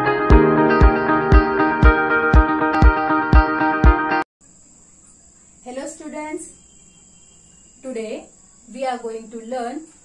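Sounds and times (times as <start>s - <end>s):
intro music with regular beat: 0.0s - 4.2s.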